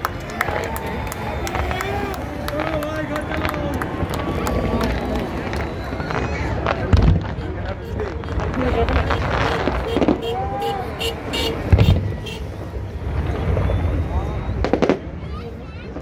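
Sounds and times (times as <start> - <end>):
crowd chatter: 0.0 - 16.0
fireworks cracking and banging: 0.0 - 16.0
loud low boom: 2.6 - 10.8.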